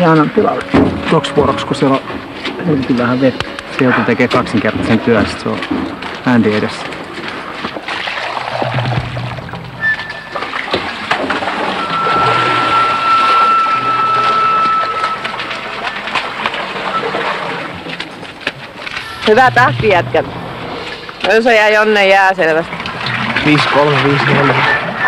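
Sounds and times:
water sloshing and splashing: 0.0s - 25.0s.

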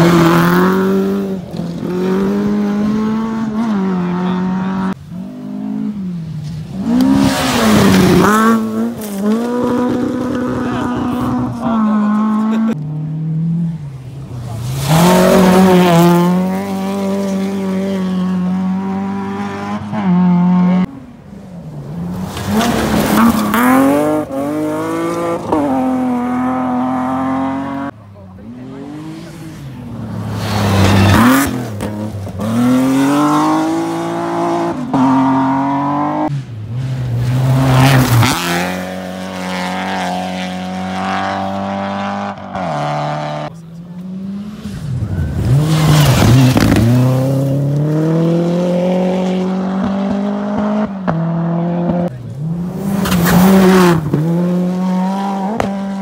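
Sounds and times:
rally car engines at full throttle: 0.0s - 56.0s.

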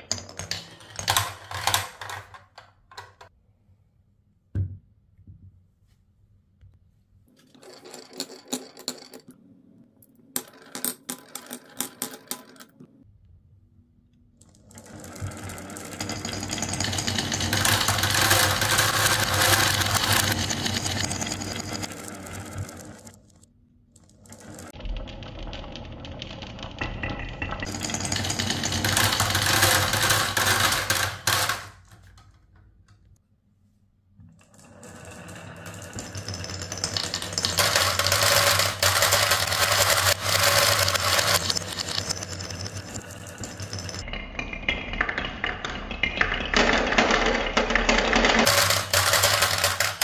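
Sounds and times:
marbles rattling on wooden run: 0.0s - 3.3s, 14.5s - 23.4s, 24.0s - 32.1s, 34.5s - 50.0s
marbles clicking on wood: 14.5s - 23.4s, 24.0s - 32.1s, 35.5s - 44.1s, 45.0s - 50.0s.

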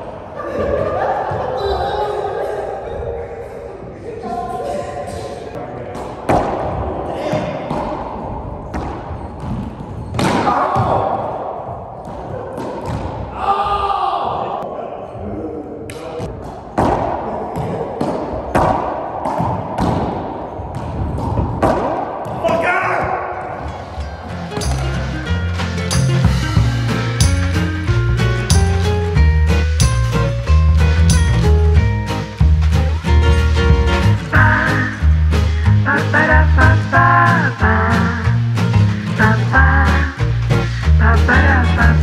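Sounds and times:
players' voices: 0.0s - 8.5s, 10.2s - 20.4s
ball smacking off racquets and walls: 16.4s - 22.6s
music with bass beat: 24.2s - 42.0s.

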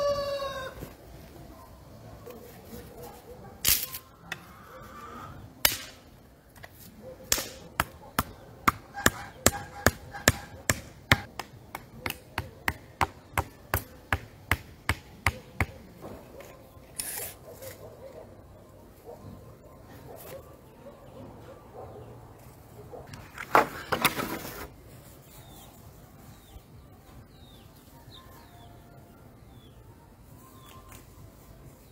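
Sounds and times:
scraping rustle: 23.4s - 25.9s.

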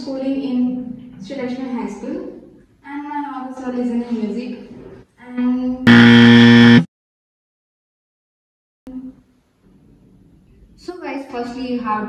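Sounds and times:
wrong-answer buzzer: 5.9s - 6.9s.

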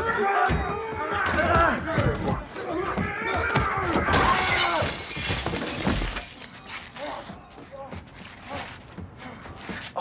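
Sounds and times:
glass window shattering: 4.1s - 7.0s
glass fragments tinkling: 4.4s - 7.5s.

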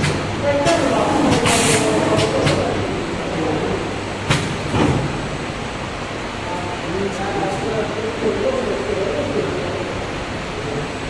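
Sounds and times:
machinery humming: 0.0s - 11.0s.

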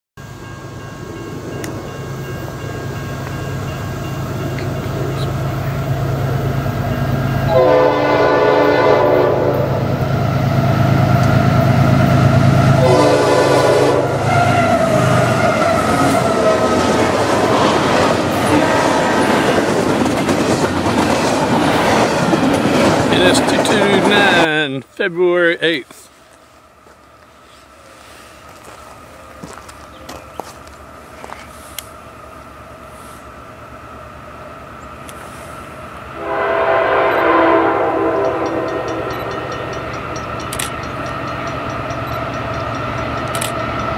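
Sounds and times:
diesel locomotive engine: 0.2s - 43.9s
train air horn blasts: 7.5s - 9.8s, 12.6s - 16.6s, 36.2s - 39.7s
train wheel clatter: 15.0s - 24.6s, 38.0s - 43.9s.

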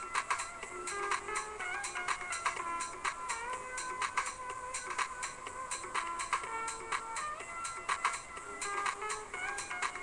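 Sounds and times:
music with percussive beat: 0.0s - 10.0s.

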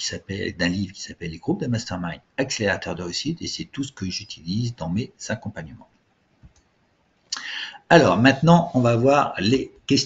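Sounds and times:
man talking: 0.0s - 5.9s, 7.4s - 10.0s
breathy in-breath: 7.4s - 7.8s.

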